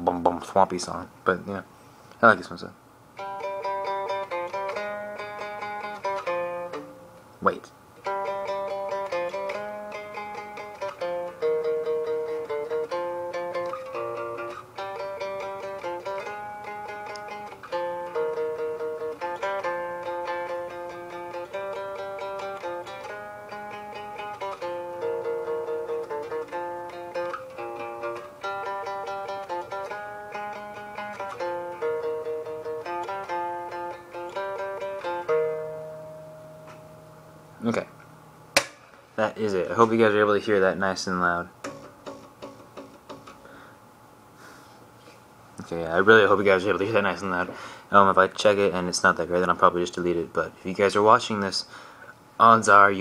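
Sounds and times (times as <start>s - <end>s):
electric bass riff: 3.2s - 7.3s, 8.0s - 39.3s.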